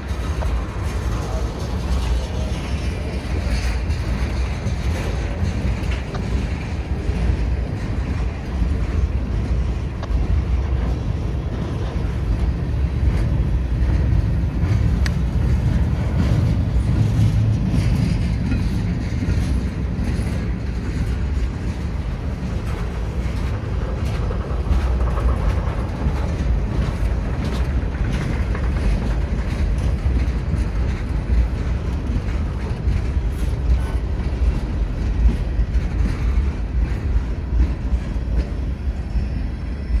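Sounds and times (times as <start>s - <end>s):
steel wheels rumbling on rail: 0.0s - 40.0s
wheels clicking over rail joints: 0.0s - 40.0s.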